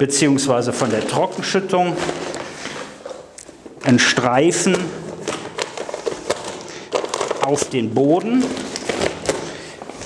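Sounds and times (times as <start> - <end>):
faint rustling of plastic sack: 0.2 - 10.0.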